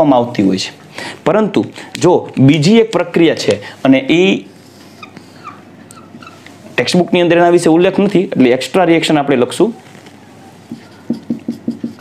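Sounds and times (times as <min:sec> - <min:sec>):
man talking: 0:00.0 - 0:04.5, 0:06.8 - 0:09.8
marker pen squeaking on whiteboard: 0:04.5 - 0:07.4, 0:09.6 - 0:12.0.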